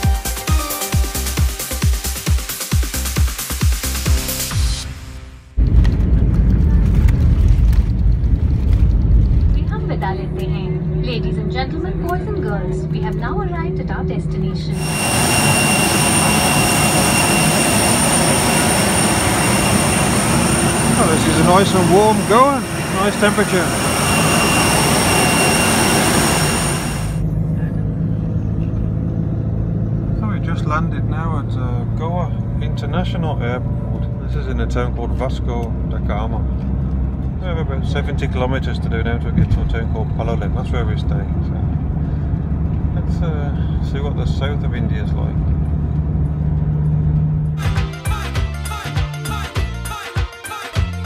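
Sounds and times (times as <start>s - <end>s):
car interior road rumble: 5.6s - 14.7s
steady cabin hum: 5.6s - 27.2s
jet engines roaring: 5.6s - 30.1s
wheels rumbling on runway: 5.6s - 47.6s.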